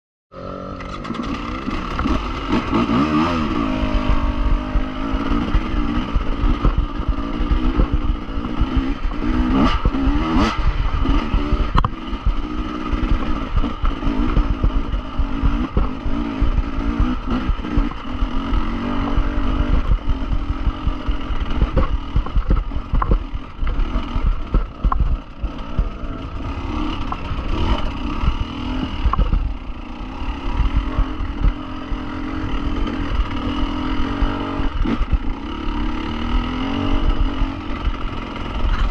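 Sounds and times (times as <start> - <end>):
dirt bike engine revving: 0.3 - 38.9.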